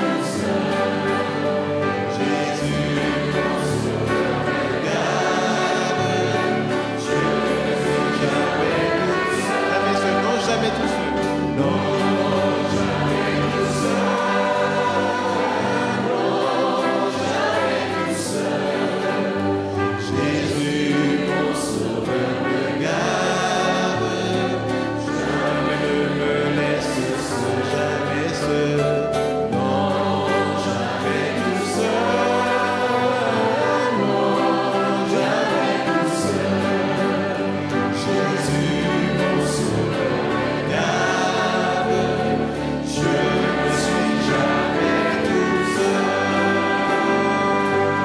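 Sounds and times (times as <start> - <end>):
congregation singing a hymn: 0.0 - 48.0
trumpet: 0.0 - 48.0
violins: 0.0 - 48.0
man singing into a microphone: 22.8 - 24.7, 26.2 - 34.0.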